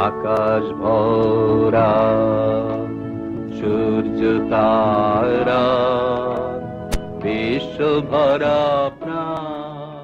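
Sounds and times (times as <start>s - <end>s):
person singing with vibrato: 0.0s - 10.0s.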